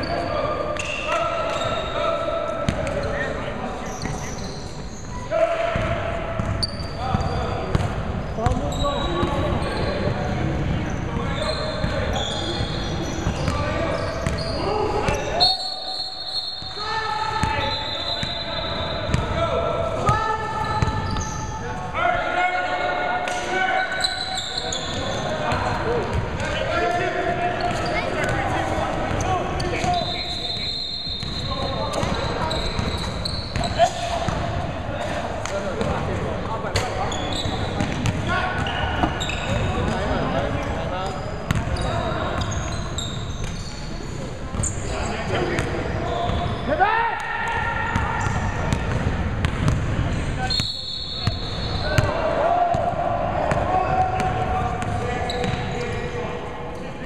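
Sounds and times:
players' voices in echoing hall: 0:00.0 - 0:57.0.

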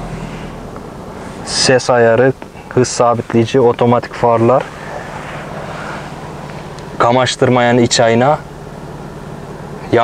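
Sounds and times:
car cabin hum: 0:00.0 - 0:10.0
soft rushing noise: 0:02.5 - 0:08.1.

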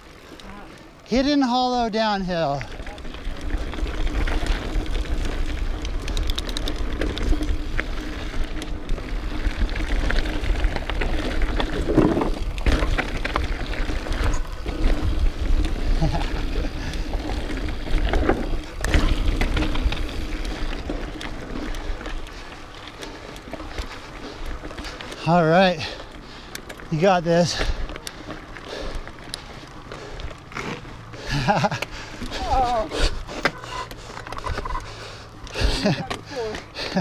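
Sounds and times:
bike rattling: 0:00.0 - 0:37.0
tyres crunching over stones: 0:00.2 - 0:37.0
heavy knocks of bike: 0:10.0 - 0:20.6.

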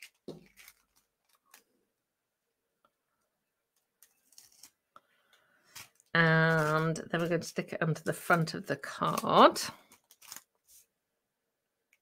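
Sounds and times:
card and plastic crinkling: 0:00.0 - 0:01.9, 0:03.8 - 0:10.9.

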